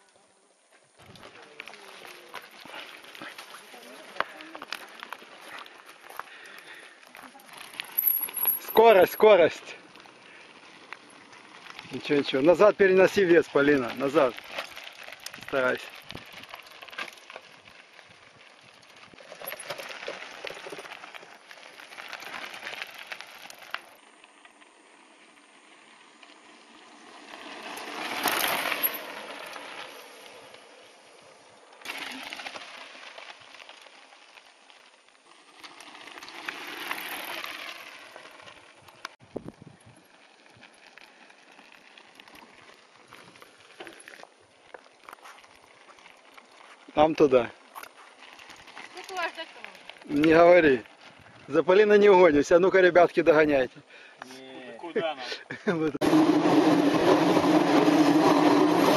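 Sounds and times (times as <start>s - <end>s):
bike tyres crunching over gravel: 0.0s - 58.9s.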